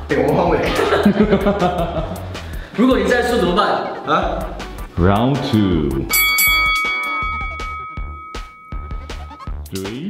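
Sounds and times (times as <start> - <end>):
upbeat background music: 0.0 - 10.0
bell-like chime: 6.1 - 9.6.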